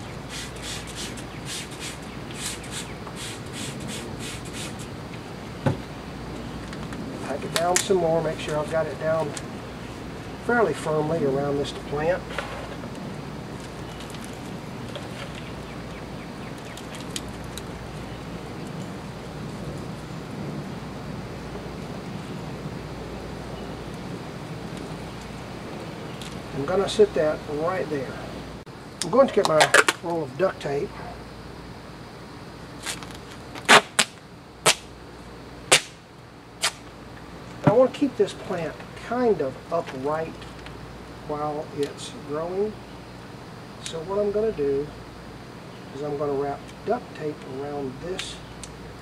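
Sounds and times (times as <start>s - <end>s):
low outdoor rumble: 0.0s - 49.0s.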